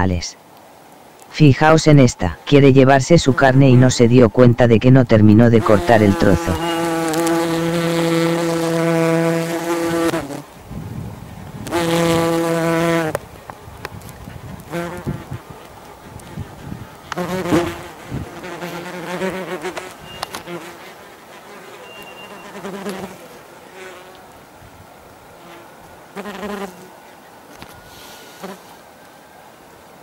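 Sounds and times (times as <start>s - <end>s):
wasps buzzing: 5.4s - 10.6s, 11.5s - 13.2s, 14.0s - 24.2s, 25.4s - 26.9s.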